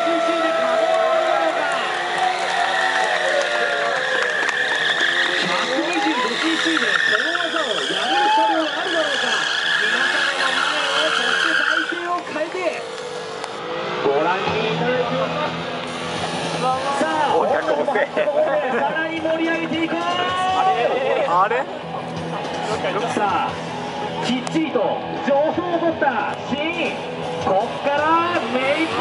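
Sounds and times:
tyres squealing on asphalt: 0.0s - 21.3s, 26.8s - 29.0s
motorcycle engine revving: 1.9s - 18.2s, 26.8s - 29.0s.

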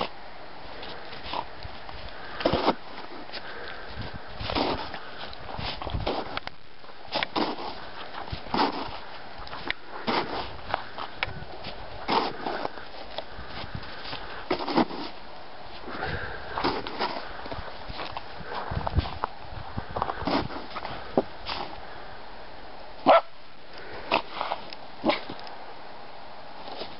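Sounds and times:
snow crunching: 0.0s - 19.2s
dog snuffling in snow: 4.4s - 6.4s, 7.1s - 10.6s, 12.0s - 13.0s, 13.8s - 15.2s, 20.2s - 21.8s.

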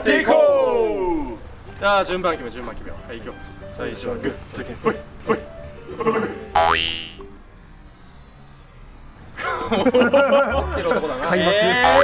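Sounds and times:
comic boing: 6.6s - 7.2s.

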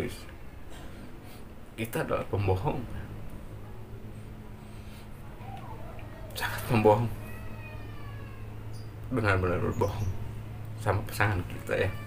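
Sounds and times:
low electrical hum: 0.0s - 12.0s
cat meowing faintly: 5.4s - 8.9s, 11.5s - 12.0s.

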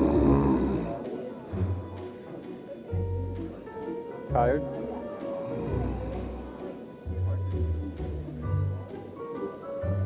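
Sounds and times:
woman fake snoring: 0.0s - 1.0s, 5.4s - 6.6s
background music with bass pulse: 4.3s - 9.1s.

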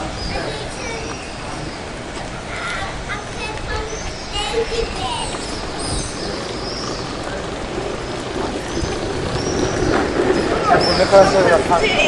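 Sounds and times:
faint distant voices: 0.0s - 12.0s
rough noise with low rumble: 0.0s - 12.0s.

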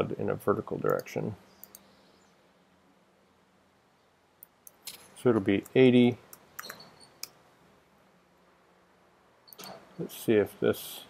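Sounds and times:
computer mouse clicks: 0.9s - 1.9s, 5.6s - 7.4s, 9.5s - 9.8s.

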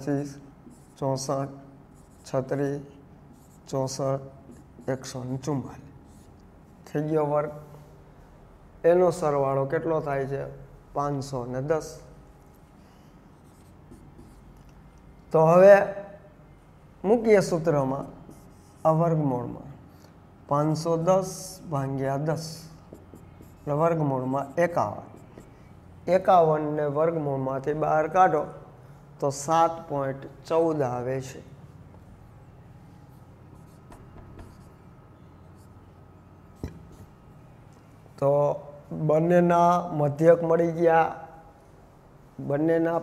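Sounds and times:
marker pen writing on whiteboard: 0.3s - 6.9s, 13.3s - 14.8s, 18.0s - 19.2s, 22.2s - 25.7s, 33.1s - 37.2s.

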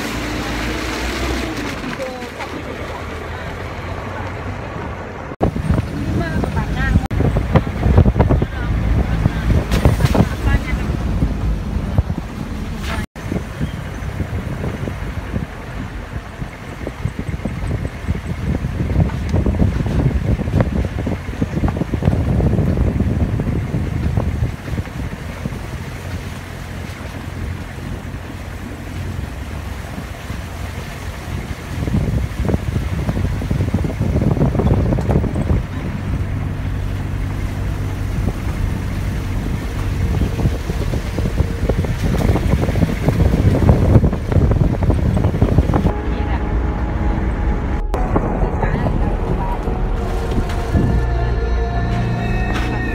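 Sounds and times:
wind buffeting microphone: 0.0s - 51.4s
vehicle engine hum: 0.0s - 52.9s.

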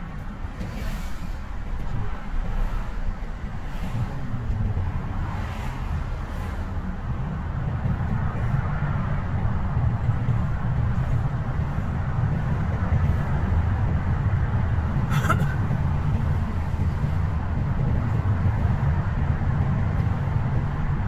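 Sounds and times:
car cabin road and engine rumble: 0.0s - 21.0s.

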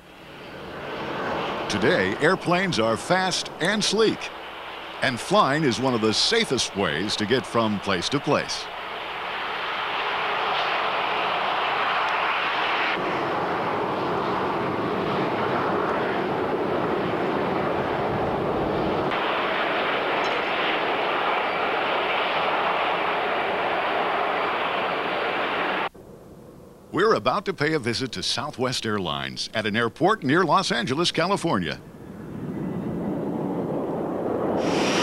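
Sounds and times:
jet engines rushing in flight: 0.0s - 27.0s, 30.3s - 35.0s.

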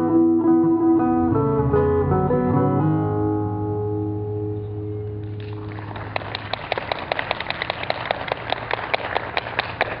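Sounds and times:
audience applauding: 5.3s - 10.0s.

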